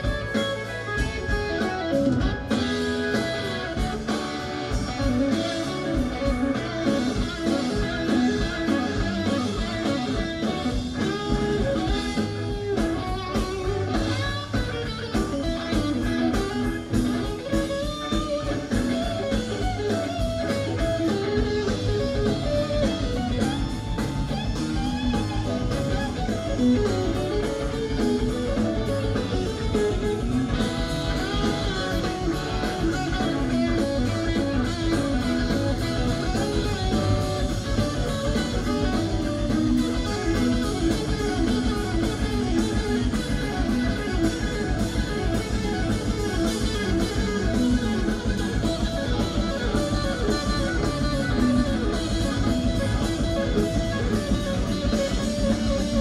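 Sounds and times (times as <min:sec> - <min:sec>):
drum kit: 0:00.0 - 0:56.0
electric guitar lead lines: 0:00.0 - 0:56.0
rock band playing: 0:00.0 - 0:56.0.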